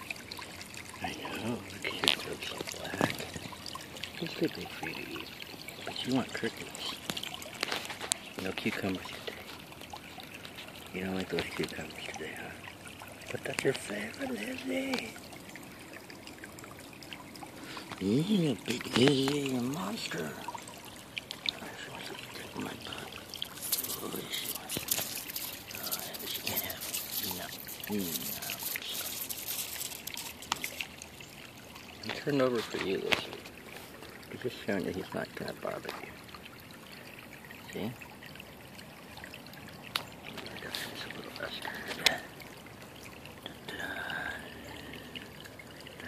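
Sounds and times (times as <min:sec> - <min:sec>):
stream water trickling: 0:00.0 - 0:46.0.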